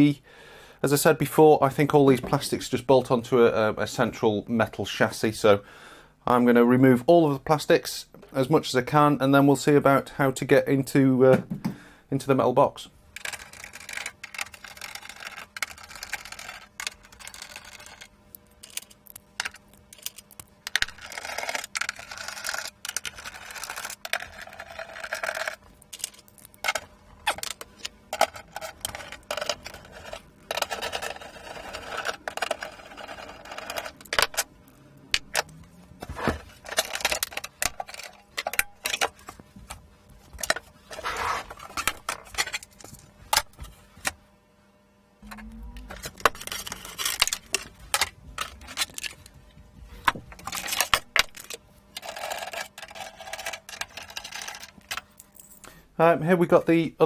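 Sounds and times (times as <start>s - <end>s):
plastic panels clicking and scraping: 35.2s - 44.2s, 45.9s - 49.3s.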